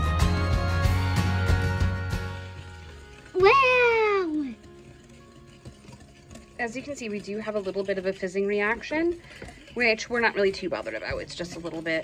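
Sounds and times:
background music: 0.0 - 9.7.

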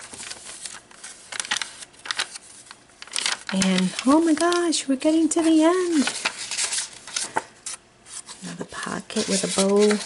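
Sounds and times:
paper pages rustling: 0.0 - 10.0.

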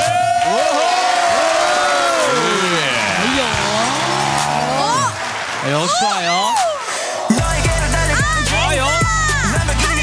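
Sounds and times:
audience cheering and whooping: 0.0 - 7.4
dance music: 1.2 - 10.0.

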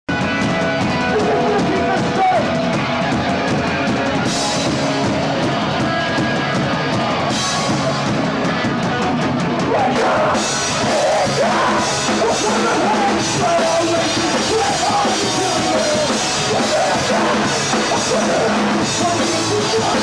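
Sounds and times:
punk band playing live: 0.1 - 20.0.

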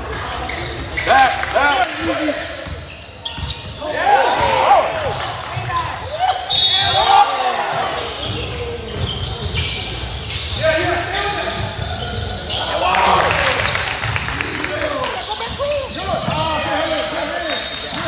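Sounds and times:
people shouting: 6.2 - 7.9.

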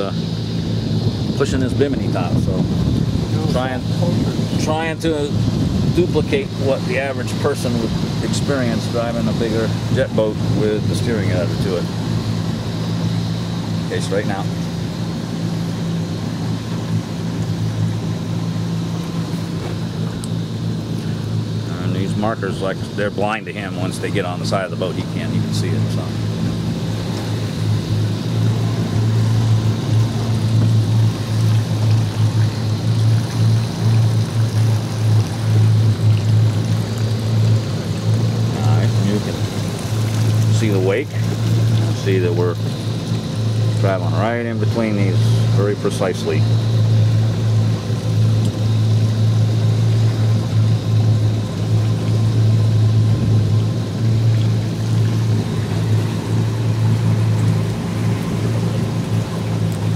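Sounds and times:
boat engines idling: 0.0 - 59.9.

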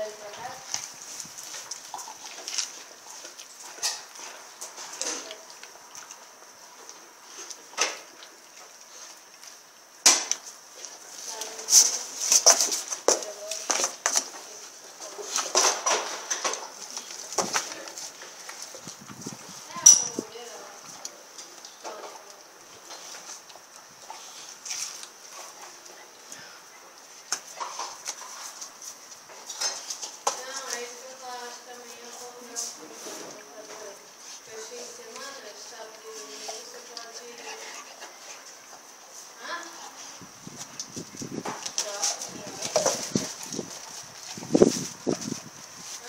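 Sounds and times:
dog licking and chewing meat: 0.7 - 9.6.

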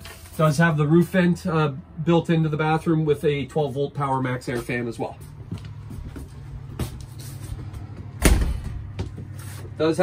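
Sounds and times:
heavy thump: 8.2 - 9.2.

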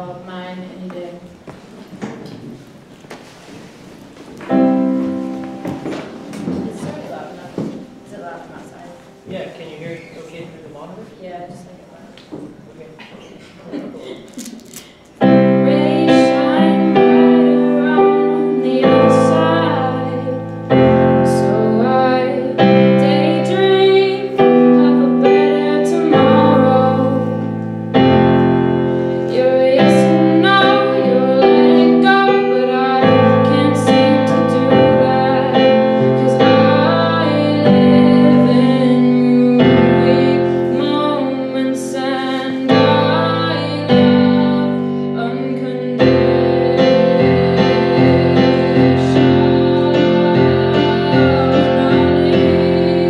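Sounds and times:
electronic keyboard piano chord: 4.5 - 9.3, 15.2 - 41.7, 42.7 - 53.0
woman singing: 15.2 - 28.3, 29.2 - 53.0.

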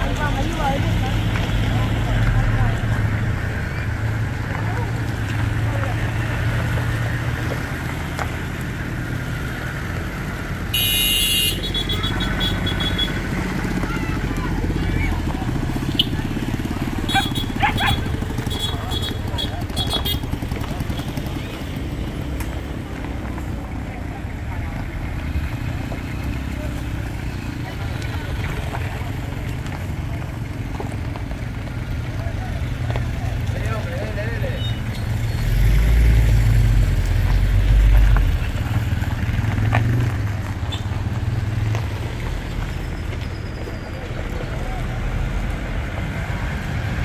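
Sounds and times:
people talking: 0.0 - 7.7, 11.6 - 31.1, 31.8 - 36.1, 43.2 - 47.0
car engines at low speed: 0.0 - 47.0.

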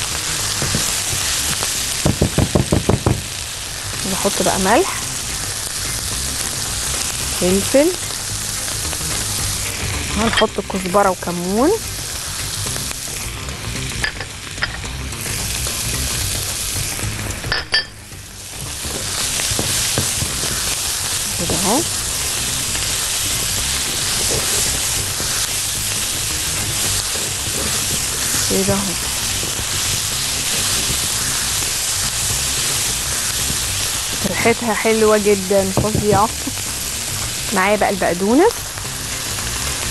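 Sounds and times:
vegetables sizzling in pan: 0.0 - 39.9
spatula stirring: 18.8 - 34.5.

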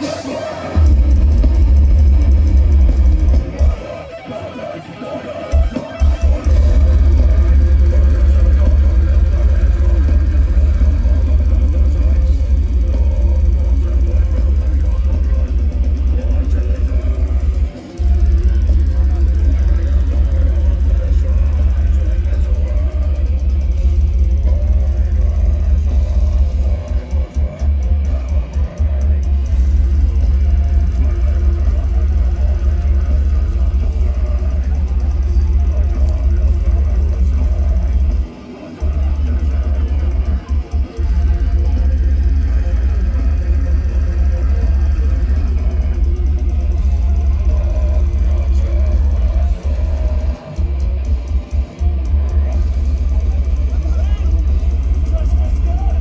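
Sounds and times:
death metal band playing live: 0.0 - 56.0
distorted electric guitar: 0.0 - 56.0
drum kit: 0.0 - 56.0.

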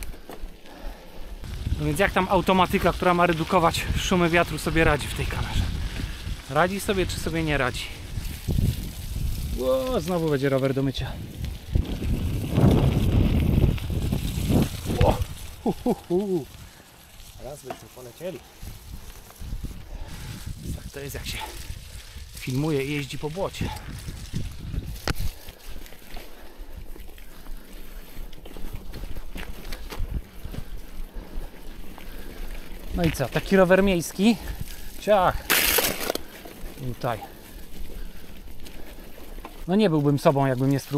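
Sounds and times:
bicycle tyres rolling through mud: 0.0 - 40.9
wind buffeting microphone: 1.3 - 17.6, 18.2 - 35.5
bike knocks and rattles: 35.4 - 36.3.

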